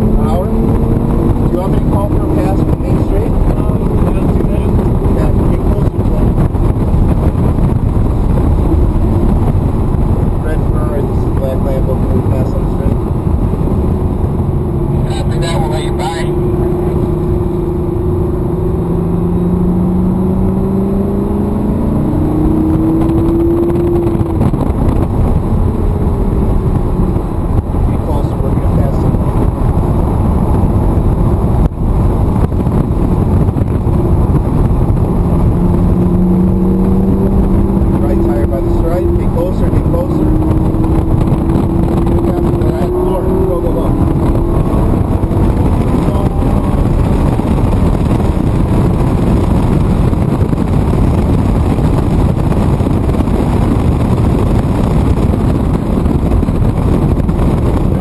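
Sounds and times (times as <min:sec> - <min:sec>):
car engine accelerating hard: 0:00.0 - 0:58.0
road and wind rumble: 0:00.0 - 0:58.0.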